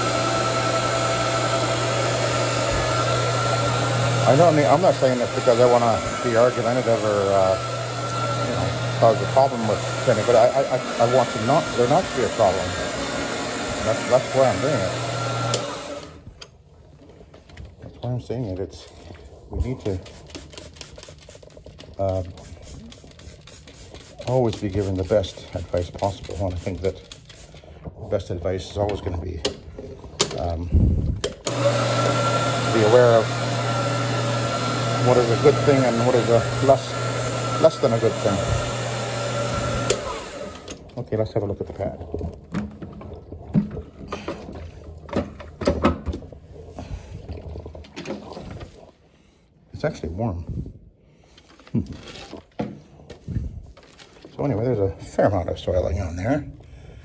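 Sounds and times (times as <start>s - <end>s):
floor machine motor hum: 0.0s - 16.2s, 31.4s - 40.9s.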